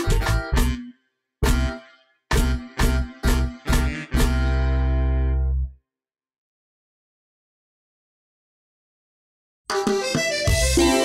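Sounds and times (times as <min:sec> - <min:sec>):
dance music final chord: 0:00.3 - 0:05.6.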